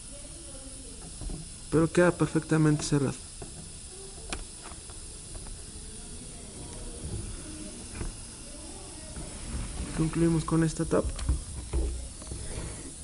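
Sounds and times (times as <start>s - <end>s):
compressed air hissing: 0.0s - 13.0s.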